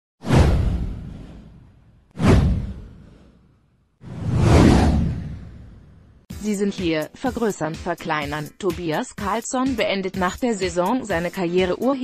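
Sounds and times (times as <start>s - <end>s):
deep whoosh: 0.2s - 3.4s, 4.0s - 6.2s.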